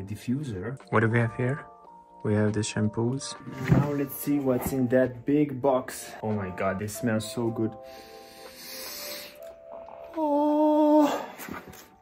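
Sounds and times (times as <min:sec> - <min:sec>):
soft background music: 0:00.0 - 0:12.0
person sniffing: 0:08.1 - 0:09.4.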